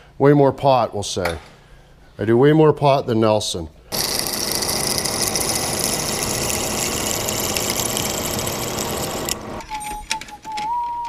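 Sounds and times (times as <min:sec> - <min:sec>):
drill press cutting metal: 0:03.9 - 0:09.6.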